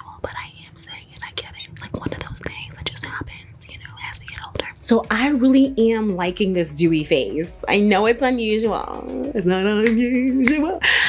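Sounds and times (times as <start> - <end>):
woman whispering: 0.0 - 4.9.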